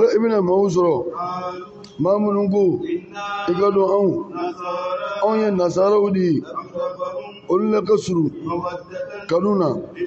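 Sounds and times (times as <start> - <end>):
man chanting recitation: 0.0 - 10.0.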